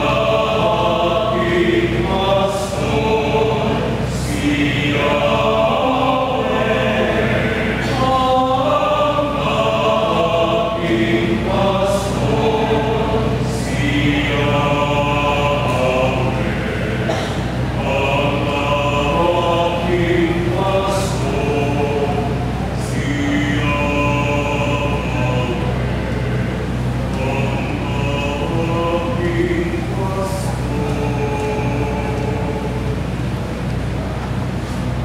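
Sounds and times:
mixed choir singing: 0:00.0 - 0:33.6.

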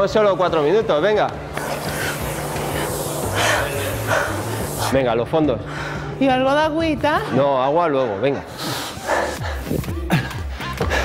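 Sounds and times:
loud rushing noise: 0:01.6 - 0:05.0
background music with bass line: 0:09.2 - 0:11.0.

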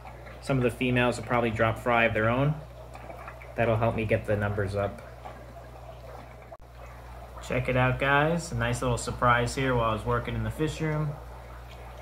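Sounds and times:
low electrical hum: 0:00.0 - 0:12.0
water trickling from filters: 0:00.0 - 0:12.0.

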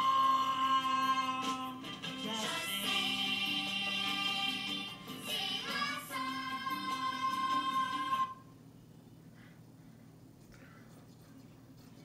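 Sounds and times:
musical backing through tv speaker: 0:00.0 - 0:08.6
children singing: 0:02.3 - 0:08.4.

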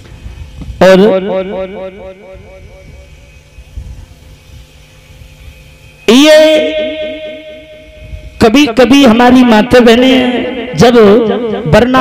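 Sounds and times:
faint steady hum: 0:00.0 - 0:12.0
man's voice with echo over pa: 0:00.8 - 0:02.8, 0:06.1 - 0:12.0.

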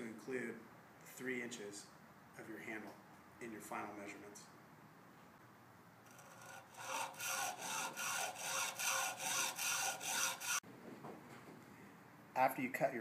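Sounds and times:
hacksaw sawing: 0:06.1 - 0:10.6.

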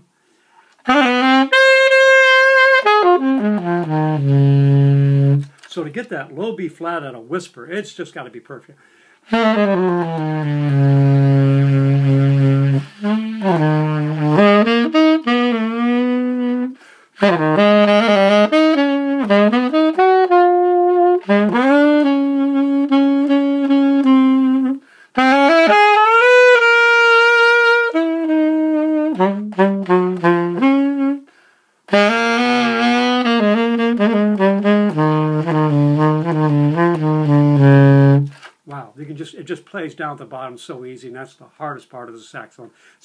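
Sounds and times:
alto saxophone melody: 0:00.0 - 0:05.7, 0:08.9 - 0:38.8.

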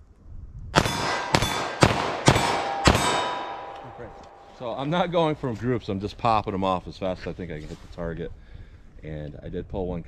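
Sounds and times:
pistol shots: 0:00.8 - 0:04.6
steel target ringing: 0:00.8 - 0:05.4.

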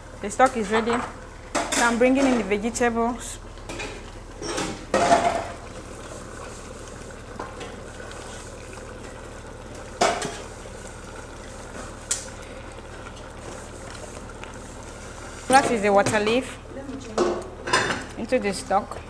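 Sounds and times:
simmering pot hiss: 0:00.0 - 0:19.0.

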